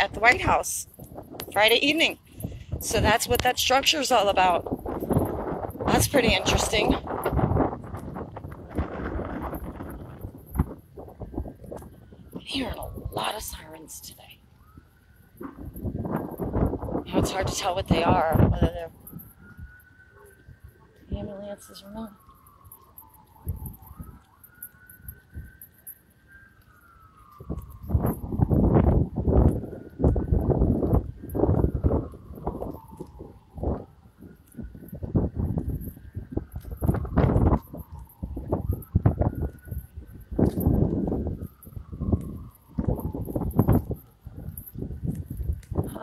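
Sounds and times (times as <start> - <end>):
distant siren wailing: 0.0 - 46.0
wind buffeting microphone: 0.0 - 46.0.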